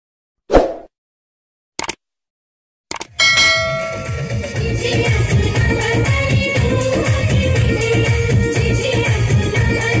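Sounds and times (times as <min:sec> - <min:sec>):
short clicks: 0:01.8 - 0:02.0, 0:02.9 - 0:03.2
loud bell-like ring: 0:03.2 - 0:04.8.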